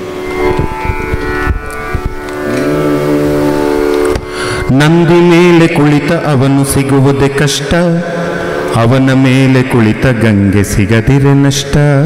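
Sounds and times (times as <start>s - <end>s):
tabla strokes: 0.0s - 4.4s
low sliding voice-like note: 0.0s - 7.0s
long held melodic notes: 0.0s - 12.0s.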